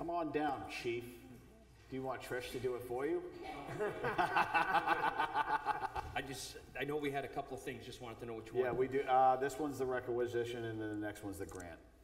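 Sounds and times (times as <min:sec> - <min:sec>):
people laughing: 0:03.6 - 0:06.4.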